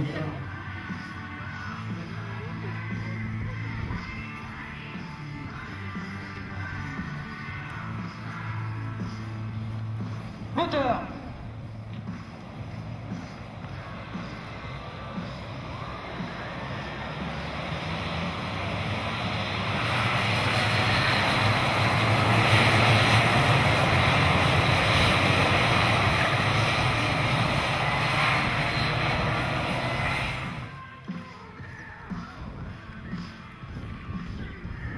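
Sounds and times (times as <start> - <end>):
two-stroke racing kart engines: 9.8 - 30.8.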